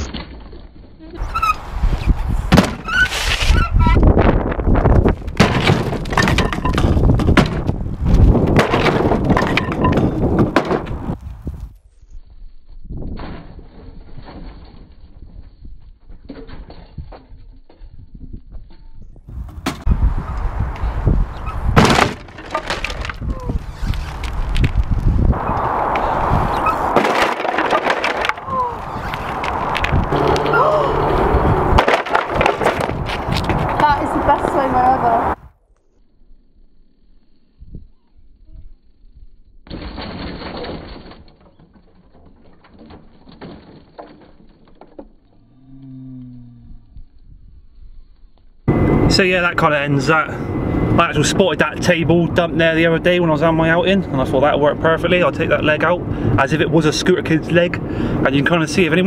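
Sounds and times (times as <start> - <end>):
board cracking and breaking: 2.5 - 3.6, 5.0 - 11.0, 21.7 - 25.0, 26.7 - 30.1, 31.7 - 33.9, 39.6 - 45.4
bike clattering down: 5.3 - 11.1
bike rolling over tarmac: 6.0 - 35.2.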